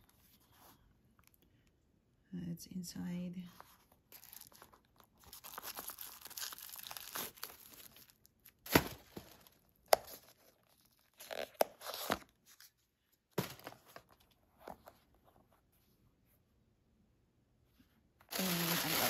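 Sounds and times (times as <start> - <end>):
tissue paper rustling: 3.5 - 9.6, 18.3 - 19.0.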